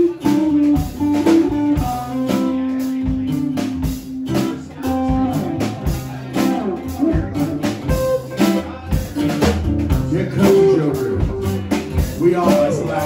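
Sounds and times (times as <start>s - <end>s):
acoustic guitars playing: 0.0s - 13.0s
drum kit: 0.0s - 13.0s.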